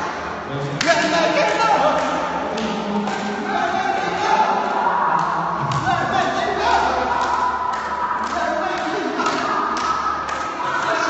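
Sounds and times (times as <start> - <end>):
people singing sustained notes: 2.2 - 11.0.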